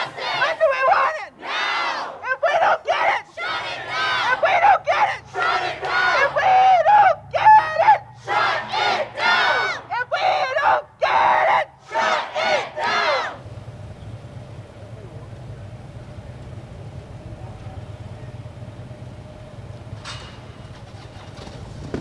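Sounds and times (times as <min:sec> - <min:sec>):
crowd ululating: 0:00.0 - 0:13.4.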